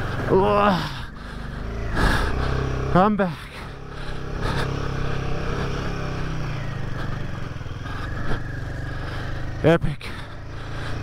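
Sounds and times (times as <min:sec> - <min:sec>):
motorcycle engine under load: 0:00.0 - 0:11.0.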